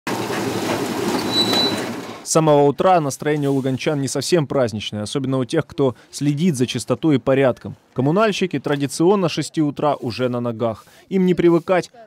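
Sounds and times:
high thin squeal: 1.1s - 2.0s.

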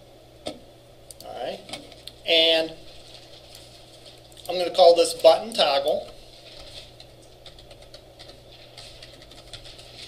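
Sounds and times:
low room hum: 0.0s - 10.0s
faint keyboard typing: 5.8s - 10.0s.

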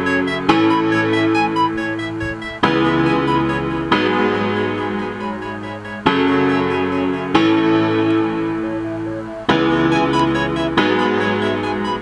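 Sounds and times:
looping keyboard chords: 0.0s - 12.0s.

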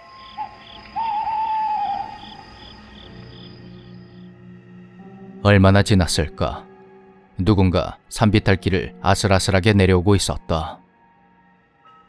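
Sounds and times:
wavering hoot-like call: 0.0s - 3.0s
cricket chirps: 0.0s - 5.4s
soft music drone: 0.0s - 12.0s.

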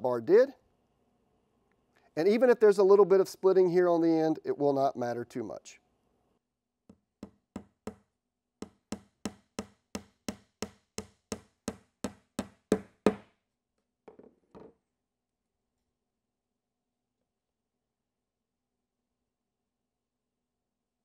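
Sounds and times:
hammer tapping nail into wood: 6.9s - 8.0s, 8.6s - 13.3s.

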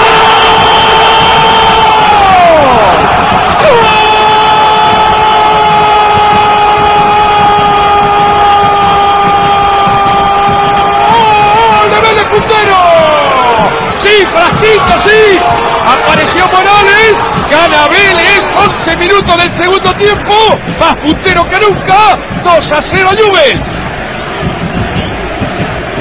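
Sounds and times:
excited shouts: 0.0s - 23.6s
stadium crowd cheering: 0.0s - 26.0s.

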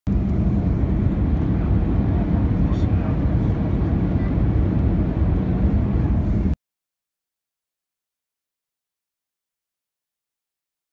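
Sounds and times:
airplane cabin engine rumble: 0.1s - 6.6s.

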